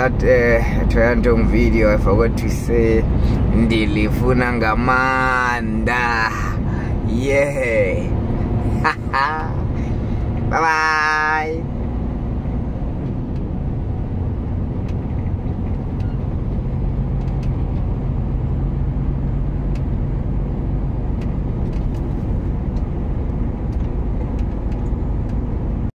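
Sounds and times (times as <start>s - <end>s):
truck engine rumble: 0.0s - 25.9s.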